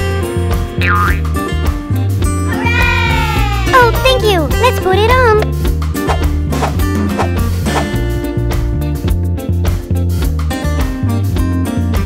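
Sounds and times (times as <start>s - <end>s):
background music with steady beat: 0.0s - 12.0s.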